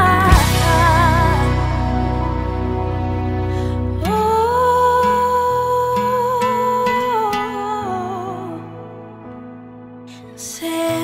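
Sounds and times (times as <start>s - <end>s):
slow worship song: 0.0s - 11.0s.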